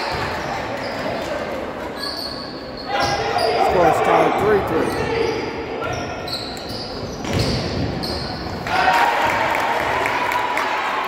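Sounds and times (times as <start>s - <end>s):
spectators' voices: 0.0s - 6.3s.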